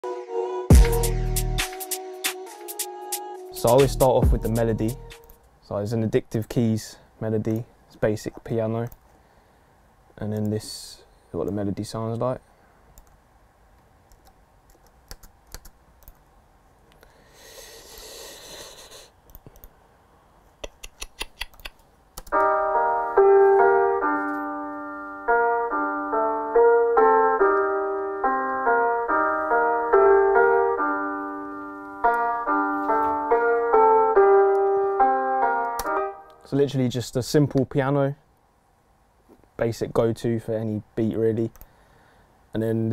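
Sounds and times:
sampled piano melody: 22.3 - 36.6.

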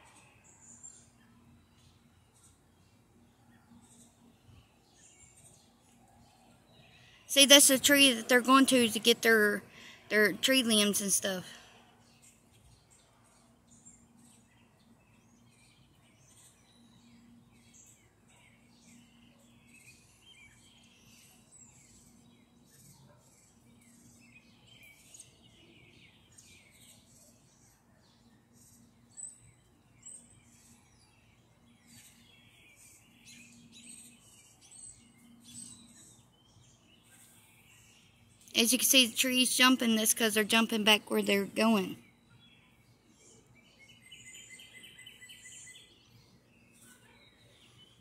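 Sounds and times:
birds chirping: 0.0 - 48.0.

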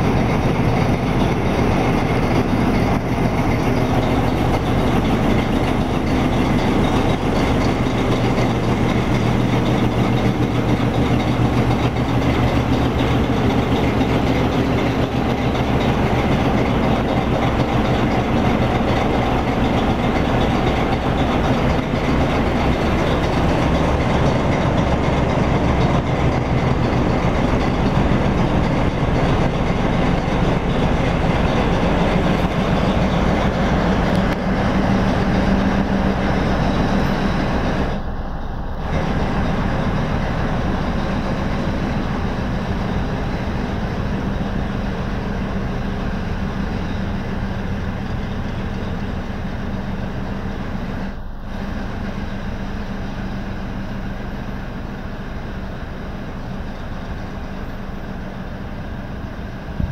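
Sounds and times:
diesel locomotive engine: 0.0 - 59.9.

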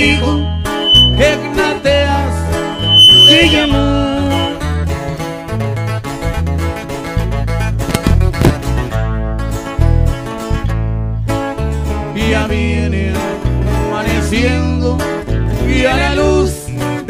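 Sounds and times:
guitars picked and strummed: 0.0 - 14.4.

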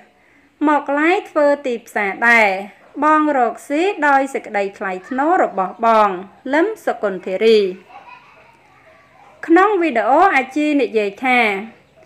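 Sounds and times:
woman speaking: 0.0 - 7.9, 9.4 - 11.9.

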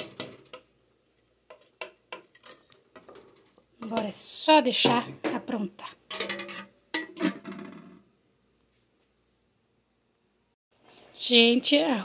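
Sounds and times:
wooden spoon knocking metal pot: 2.9 - 7.8.

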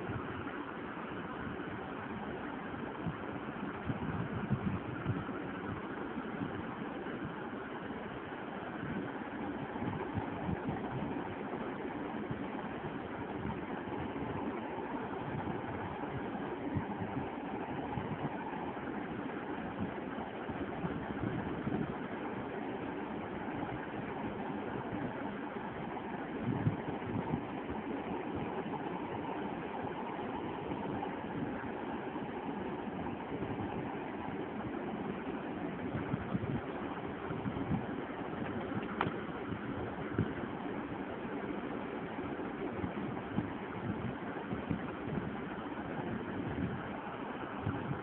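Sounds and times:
steady background noise: 0.0 - 48.0.

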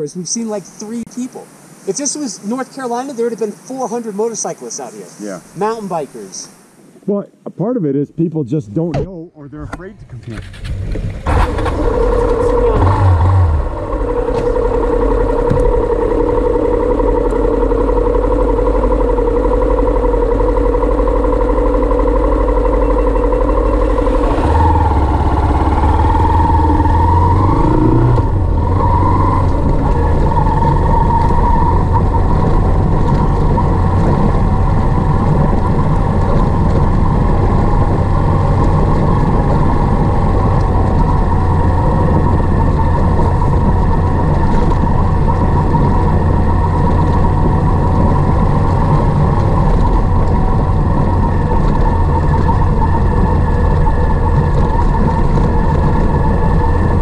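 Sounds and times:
motorcycle engine running: 9.0 - 57.0.

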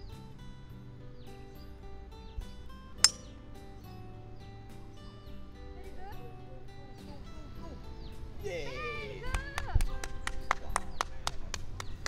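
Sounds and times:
background music: 0.0 - 12.0
golf club striking ball: 3.0 - 3.4.

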